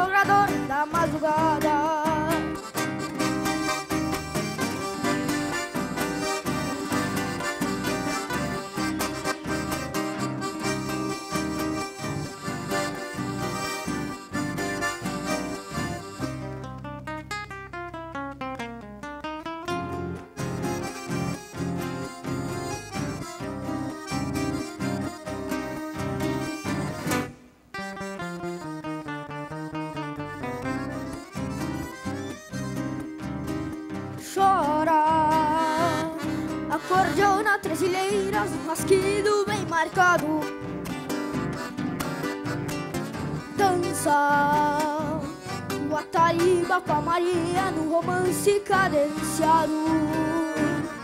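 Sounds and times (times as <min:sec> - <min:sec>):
boy singing: 0:00.0 - 0:02.7, 0:34.2 - 0:40.6, 0:43.6 - 0:51.0
piano accordion melody: 0:00.0 - 0:17.3, 0:19.7 - 0:51.0
strummed acoustic guitars: 0:00.0 - 0:51.0.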